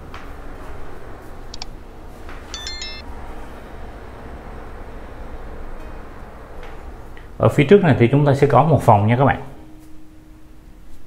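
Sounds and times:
keys jingling: 2.5 - 3.0.

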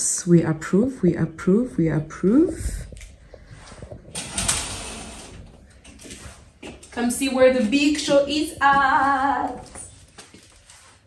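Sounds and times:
curtains sliding along rail: 4.2 - 5.4.

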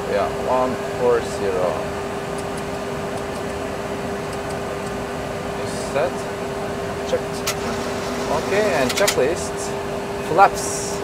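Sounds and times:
flight deck hum: 2.6 - 10.2.

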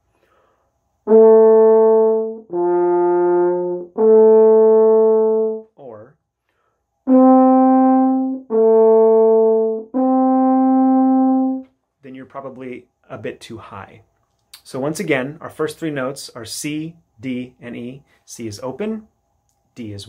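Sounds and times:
french horn sustained notes: 1.1 - 6.1, 7.1 - 11.7.

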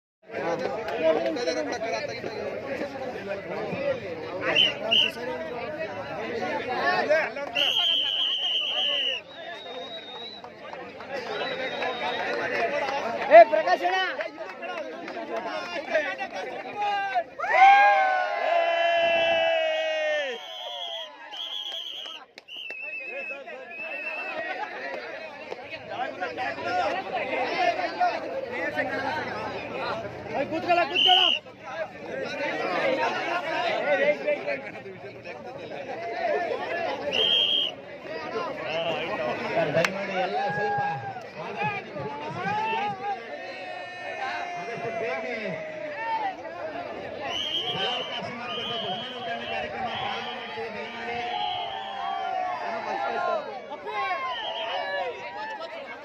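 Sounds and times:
crowd chatter: 0.2 - 56.0.

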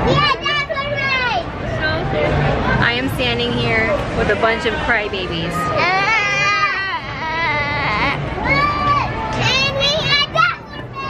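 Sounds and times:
children shouting and squealing: 5.6 - 11.0.

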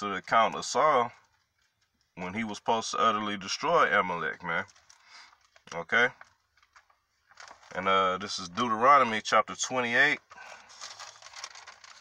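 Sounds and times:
paper pages rustling: 4.5 - 8.8, 9.8 - 12.0.

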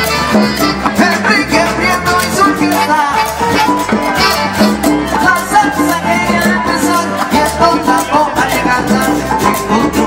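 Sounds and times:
congas: 0.0 - 10.0
drum kit: 0.0 - 10.0
hand percussion: 0.0 - 10.0
salsa band playing: 0.0 - 10.0.

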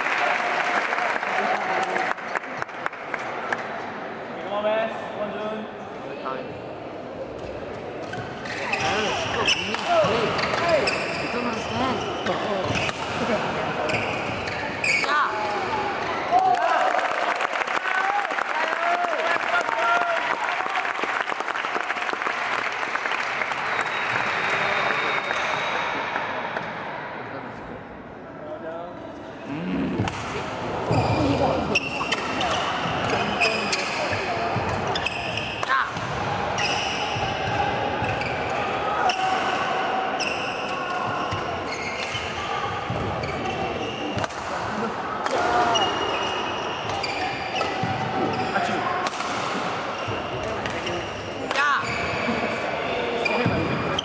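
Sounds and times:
voices in sports hall: 0.0 - 54.0.

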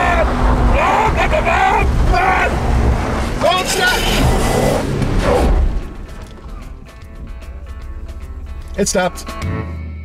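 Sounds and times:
engine running hard: 0.0 - 8.8
tires spinning throwing dirt: 0.0 - 9.0
background music: 2.6 - 10.0.

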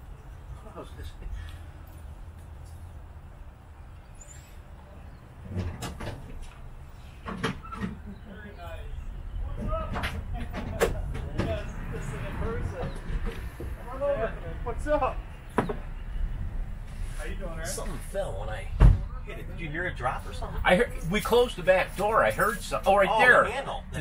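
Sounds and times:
low wind rumble: 0.0 - 24.0
indistinct talking: 8.1 - 24.0.

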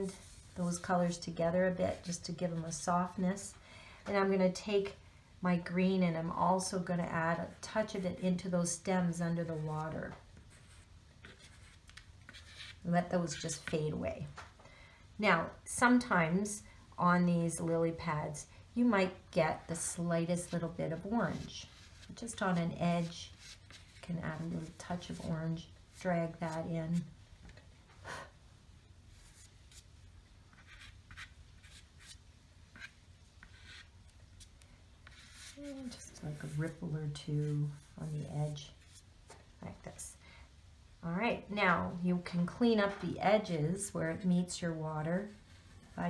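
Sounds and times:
chalk pastel rubbing on paper: 35.0 - 39.0.

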